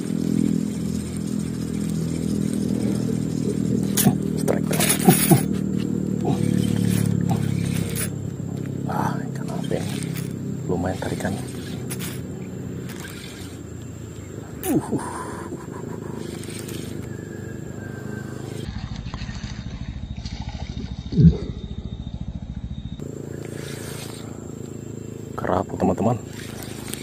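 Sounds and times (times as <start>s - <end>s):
fishing reel whirring and ticking: 0.0s - 18.8s, 22.7s - 24.7s, 25.9s - 27.0s.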